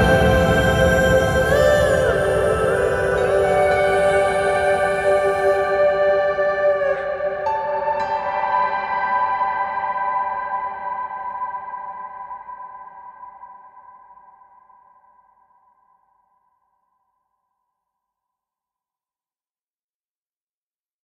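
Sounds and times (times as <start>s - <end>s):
sustained soundtrack chord: 0.0s - 9.3s.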